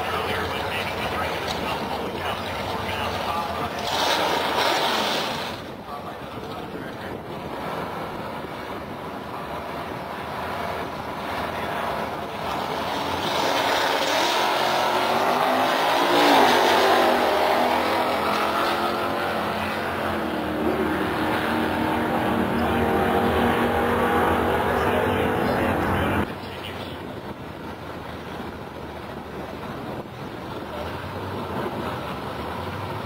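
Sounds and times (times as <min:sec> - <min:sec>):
drag cars racing at full throttle: 0:00.0 - 0:33.0.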